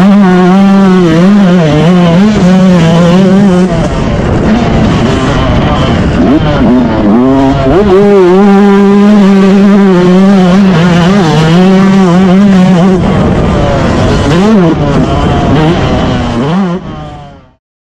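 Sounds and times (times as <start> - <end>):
motocross bike engine revving: 0.0 - 17.6
rough low rush: 0.0 - 17.6.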